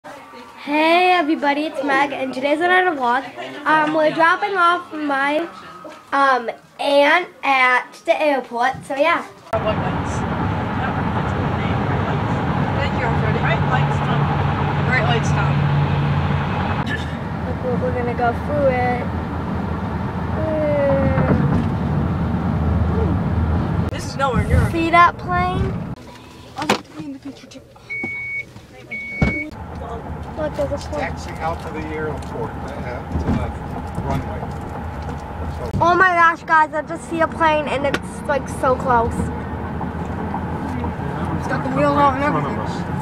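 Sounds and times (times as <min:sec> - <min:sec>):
road and tyre noise in car: 0:09.0 - 0:43.0
low cabin hum: 0:09.6 - 0:26.0, 0:29.0 - 0:43.0
sharp thump: 0:21.0 - 0:22.1
car warning beeps: 0:27.8 - 0:29.6.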